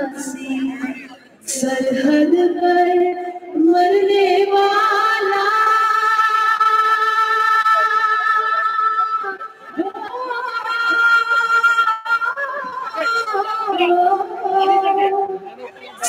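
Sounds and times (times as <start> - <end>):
woman singing into a microphone: 0.0 - 16.0.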